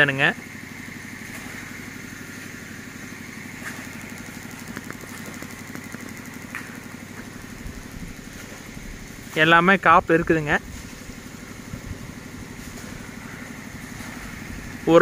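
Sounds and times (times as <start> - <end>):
small engine idling: 0.0 - 15.0.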